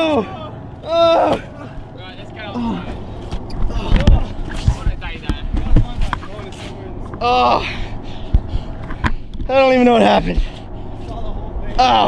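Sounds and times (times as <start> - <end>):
people yelling: 0.0 - 3.0
heavy thumps: 2.8 - 7.2.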